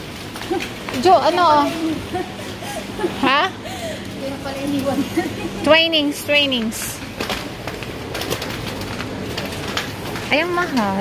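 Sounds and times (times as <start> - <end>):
shop noise: 0.0 - 11.0.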